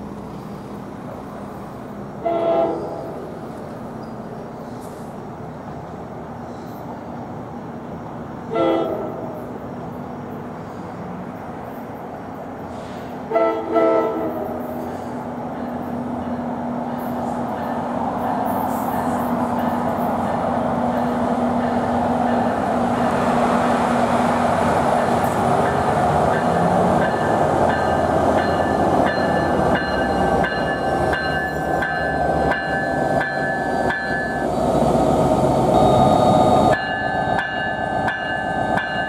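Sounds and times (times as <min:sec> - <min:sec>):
train rumbling: 0:00.0 - 0:39.0
locomotive air horn blasts: 0:02.2 - 0:03.1, 0:08.5 - 0:09.2, 0:13.3 - 0:14.5.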